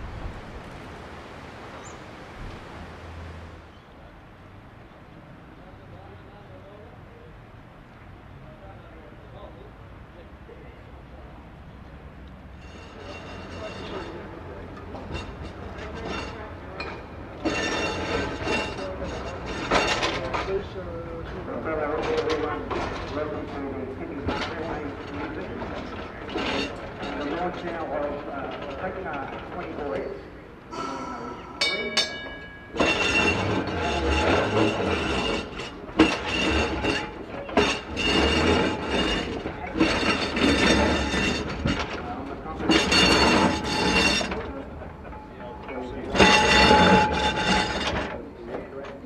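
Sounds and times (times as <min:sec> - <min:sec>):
tram wheels squealing: 0:12.5 - 0:20.7, 0:22.0 - 0:48.4
loud clank from rails: 0:12.6 - 0:20.7, 0:22.0 - 0:23.6, 0:30.7 - 0:48.7.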